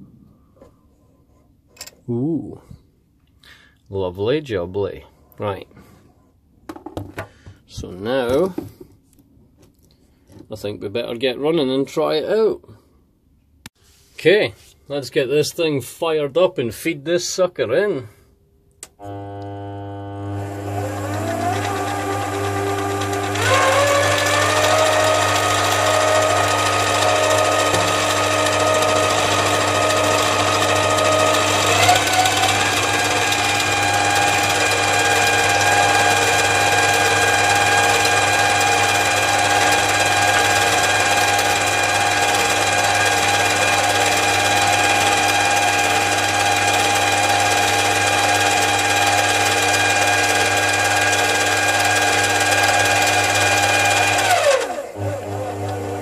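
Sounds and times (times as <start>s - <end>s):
lathe motor whine: 19.0s - 56.0s.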